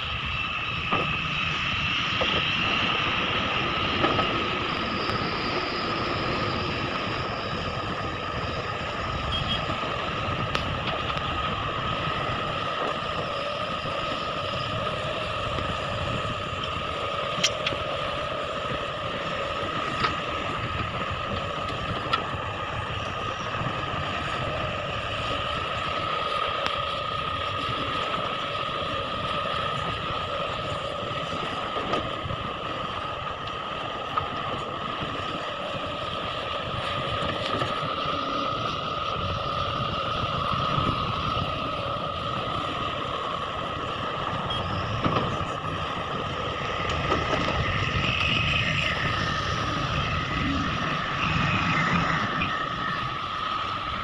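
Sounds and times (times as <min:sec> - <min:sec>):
diesel excavators running: 0:00.0 - 0:54.0
high whine: 0:00.0 - 0:54.0.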